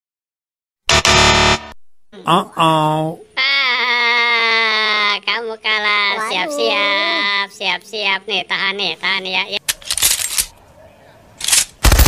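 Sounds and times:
wrong answer buzzer: 0:00.9 - 0:02.4.

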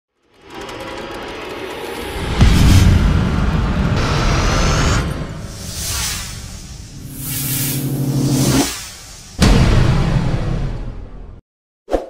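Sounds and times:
noisy rattling riser: 0:00.1 - 0:09.8.

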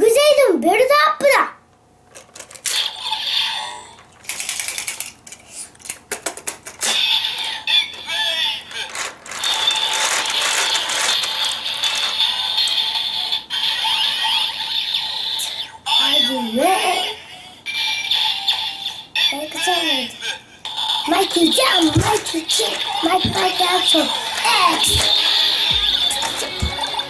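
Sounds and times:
plastic clicking and ratcheting: 0:02.1 - 0:03.0, 0:04.0 - 0:07.5
toy belt electronic music: 0:06.8 - 0:15.5, 0:20.7 - 0:27.0.

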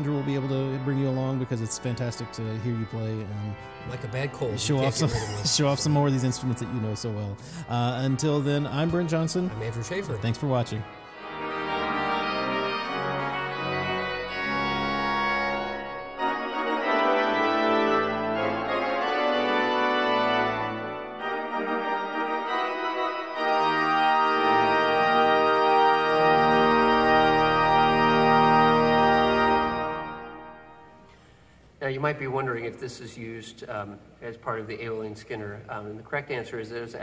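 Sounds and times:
pipe organ playing chords: 0:00.0 - 0:31.8.

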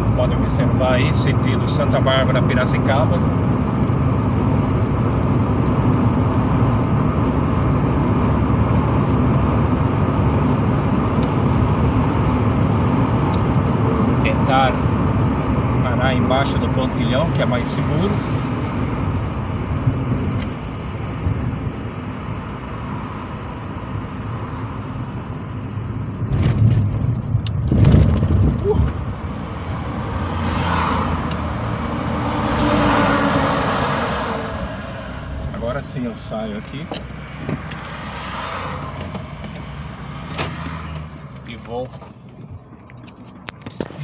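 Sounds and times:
car road and engine rumble: 0:00.0 - 0:44.0.

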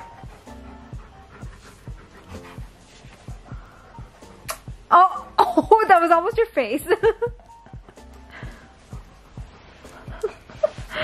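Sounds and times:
dog panting: 0:00.0 - 0:04.9
soft background music with beat: 0:00.0 - 0:11.0.

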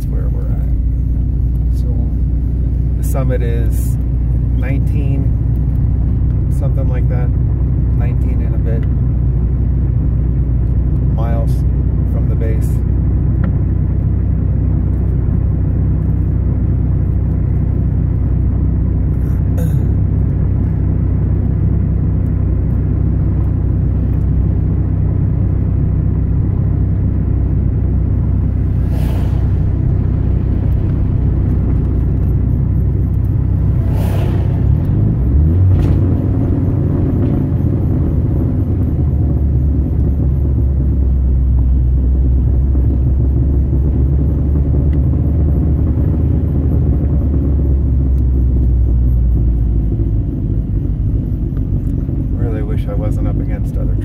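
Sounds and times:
car cabin engine and road rumble: 0:00.0 - 0:54.0.

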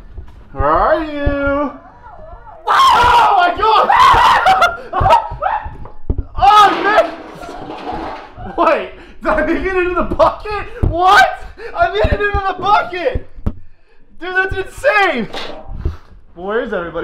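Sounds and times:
young men shouting and laughing: 0:02.6 - 0:13.2.

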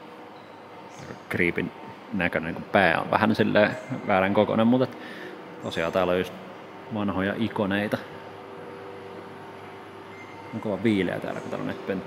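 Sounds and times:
air conditioning hiss: 0:00.0 - 0:12.0
faint even hum: 0:00.0 - 0:12.0.

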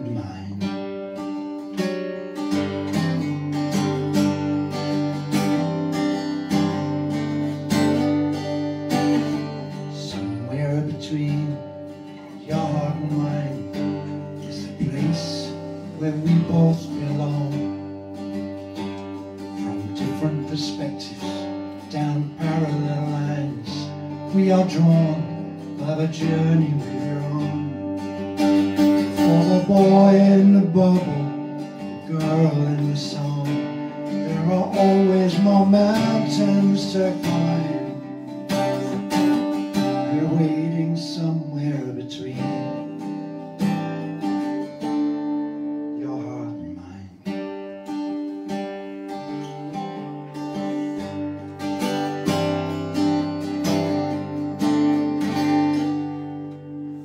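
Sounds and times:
acoustic guitar: 0:00.0 - 0:57.0.

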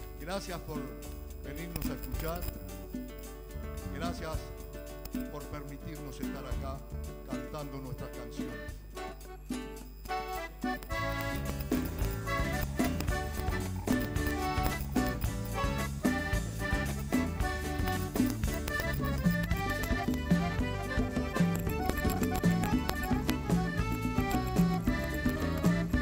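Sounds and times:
congas: 0:00.0 - 0:26.0
live folk band playing: 0:00.0 - 0:26.0.

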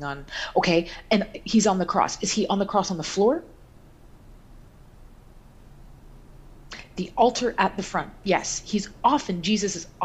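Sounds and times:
woman speaking: 0:00.0 - 0:03.6, 0:06.7 - 0:10.0
low hiss: 0:00.0 - 0:10.0
low hum: 0:00.0 - 0:10.0.

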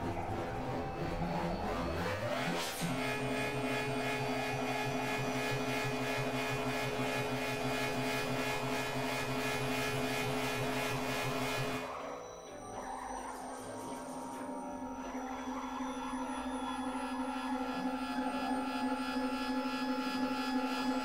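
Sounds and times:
pulsing synthesizer drone: 0:00.0 - 0:21.0
synthesizer pitch glide: 0:00.0 - 0:21.0.

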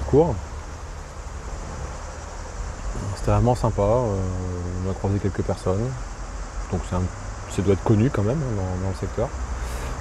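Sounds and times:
faint hiss: 0:00.0 - 0:10.0.

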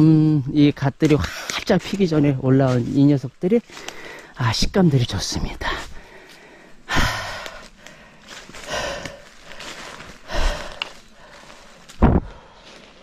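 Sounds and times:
footsteps on dry leaves: 0:00.9 - 0:13.0
man breathing hard: 0:03.7 - 0:04.4, 0:05.6 - 0:13.0.

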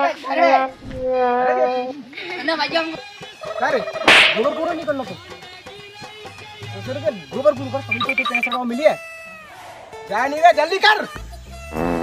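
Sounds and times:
hand slapping person: 0:04.1 - 0:04.6.

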